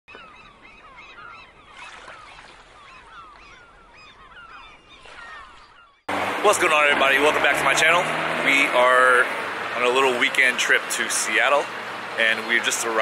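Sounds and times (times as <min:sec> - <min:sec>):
flock of birds calling: 0:00.1 - 0:06.0.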